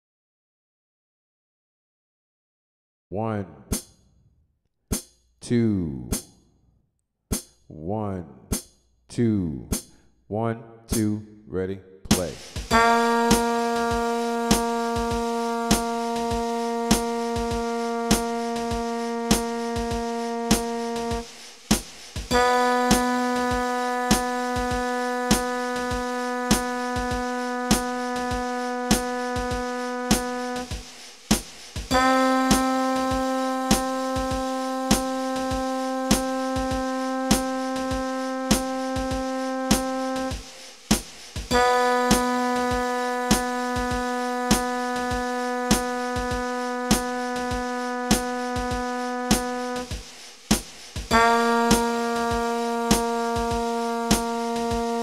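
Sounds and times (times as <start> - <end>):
sustained instrument notes: 12.7 - 21.2, 31.9 - 40.3, 41.5 - 47.1, 51.1 - 55.0.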